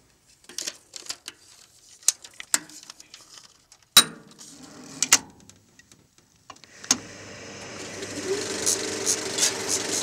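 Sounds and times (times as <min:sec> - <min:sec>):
projector motor humming and clattering: 0:06.8 - 0:10.0.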